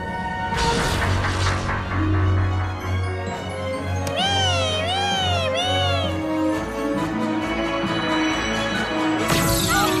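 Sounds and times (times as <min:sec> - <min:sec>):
orchestral background music: 0:00.0 - 0:10.0
high wordless voice-like tone: 0:04.0 - 0:06.4.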